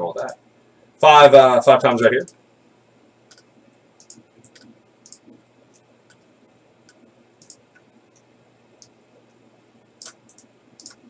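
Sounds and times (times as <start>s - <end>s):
faint computer mouse clicks: 3.3s - 5.4s, 6.9s - 7.9s, 10.0s - 11.0s.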